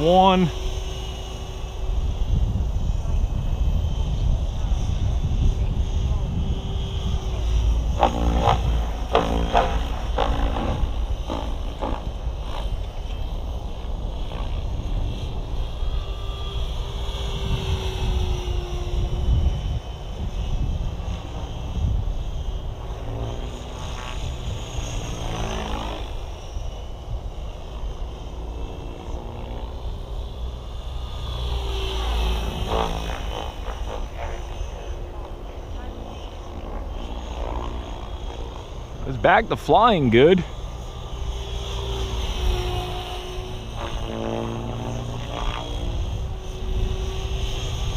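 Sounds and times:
rc helicopter rotor whine: 0:00.0 - 0:47.9
wind buffeting microphone: 0:00.0 - 0:47.9.

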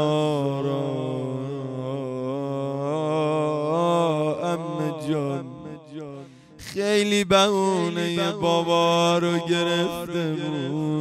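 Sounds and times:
man chanting mourning elegy: 0:00.0 - 0:11.0.

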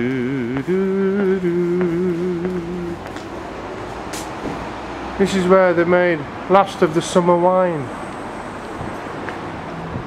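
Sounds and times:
low rumble of distant traffic: 0:00.0 - 0:10.0.

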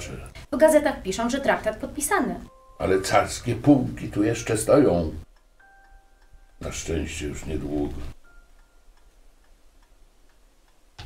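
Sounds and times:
low steady hum: 0:00.0 - 0:11.0
clock ticking: 0:00.3 - 0:11.0.

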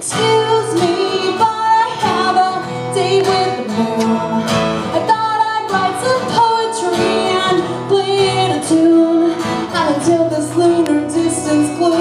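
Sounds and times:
acoustic guitar: 0:00.0 - 0:12.0
woman singing: 0:00.0 - 0:12.0.

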